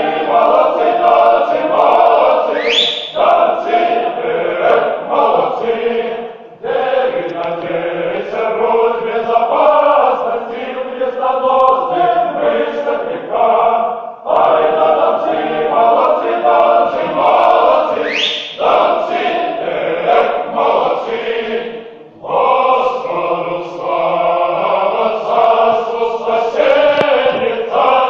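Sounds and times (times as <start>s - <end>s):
male choir singing a cappella: 0.0s - 28.0s.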